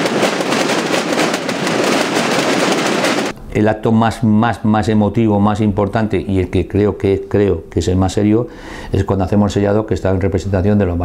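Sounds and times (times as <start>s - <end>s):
snare drums beaten together: 0.0s - 3.3s.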